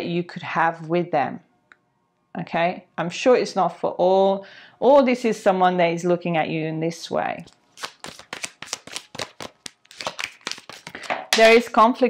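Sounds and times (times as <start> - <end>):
cards being shuffled: 7.4 - 11.6.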